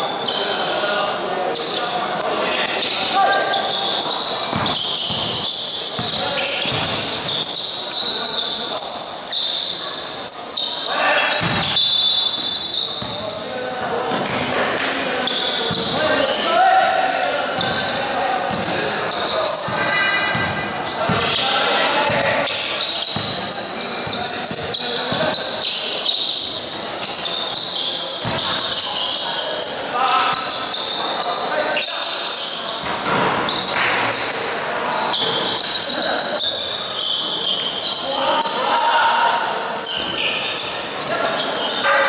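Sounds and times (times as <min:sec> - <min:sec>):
sneakers squeaking: 0:00.0 - 0:42.0
players calling out: 0:00.1 - 0:32.8
basketball bouncing on court: 0:04.5 - 0:07.6, 0:11.4 - 0:14.9, 0:15.6 - 0:16.0, 0:17.6 - 0:21.4, 0:22.0 - 0:25.5, 0:28.2 - 0:28.8.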